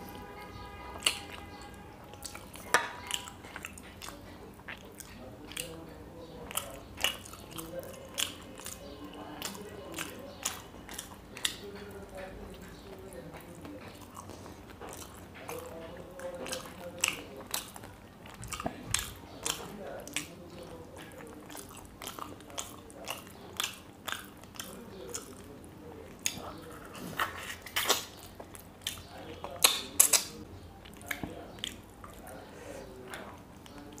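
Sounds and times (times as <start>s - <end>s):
chewing and crunching fried fish: 0.0s - 34.0s.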